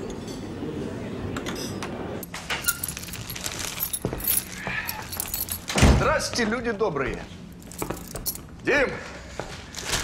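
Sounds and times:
keys jangling in lock: 0:02.2 - 0:05.8, 0:07.6 - 0:08.5.

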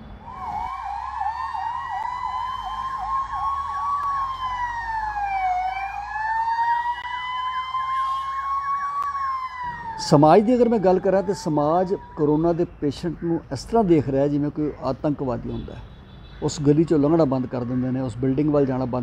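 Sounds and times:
ambulance sirens yelping and wailing: 0:00.0 - 0:19.0.

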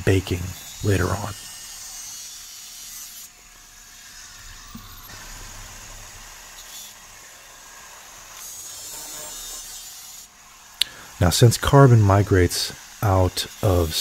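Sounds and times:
angle grinder cutting steel: 0:00.0 - 0:14.0.

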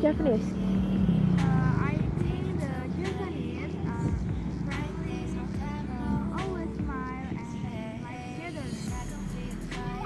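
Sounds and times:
young woman speaking: 0:00.0 - 0:00.5.

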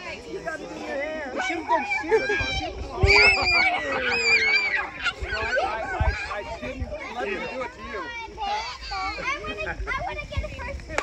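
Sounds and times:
children calling out: 0:00.0 - 0:11.0.

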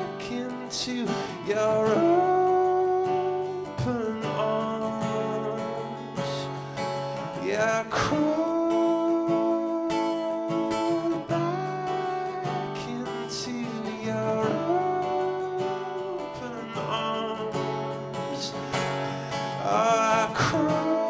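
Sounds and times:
acoustic guitar chords: 0:00.0 - 0:21.0.

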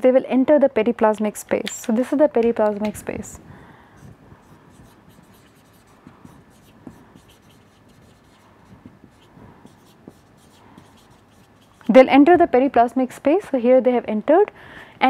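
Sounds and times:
light pen taps: 0:01.6 - 0:03.2
marker pen scratching on whiteboard: 0:04.0 - 0:12.2.

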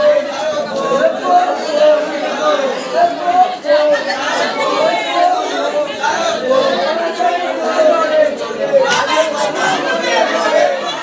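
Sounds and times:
dense crowd chatter: 0:00.0 - 0:11.0.

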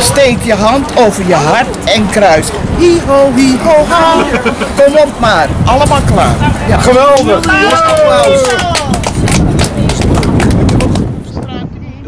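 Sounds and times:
group clapping hands: 0:07.0 - 0:11.1.

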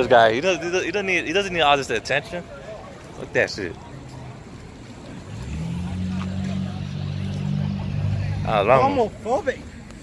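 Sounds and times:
vehicle engine running: 0:05.1 - 0:09.4.

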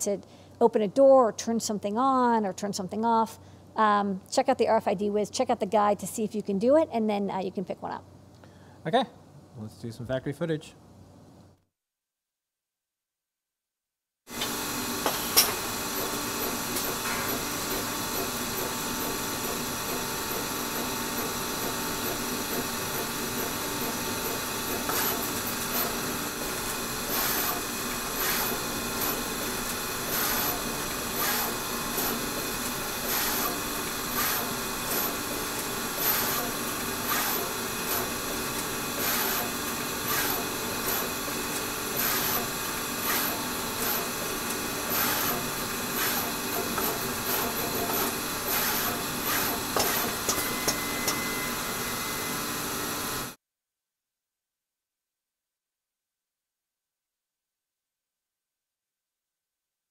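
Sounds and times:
machine hum: 0:14.3 - 0:53.4.

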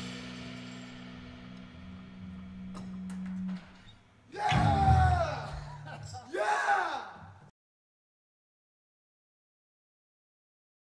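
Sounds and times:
person whooping: 0:04.3 - 0:07.3.

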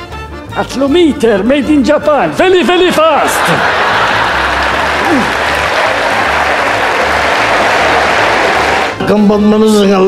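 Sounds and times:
audience applauding: 0:02.9 - 0:09.0.

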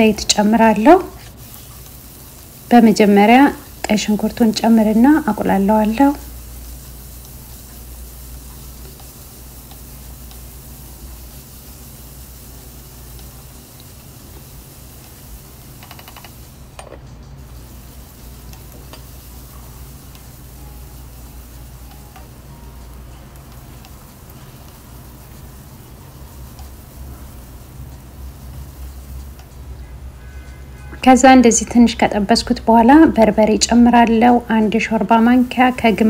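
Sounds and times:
onion sizzling in oil: 0:00.0 - 0:36.0.

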